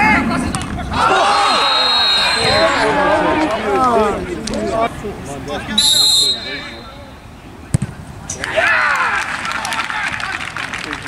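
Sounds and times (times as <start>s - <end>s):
referee's whistle blast: 1.3s - 2.7s, 5.8s - 7.0s.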